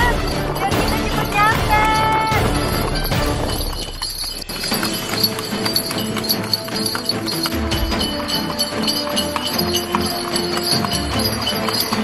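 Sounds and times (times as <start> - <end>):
background music: 0.0 - 12.0
horse hooves clip-clopping on road: 0.0 - 12.0.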